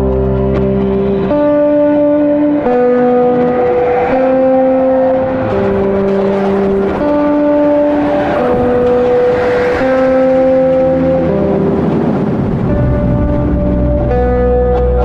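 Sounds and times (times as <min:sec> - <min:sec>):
slow held music chords: 0:00.0 - 0:15.0.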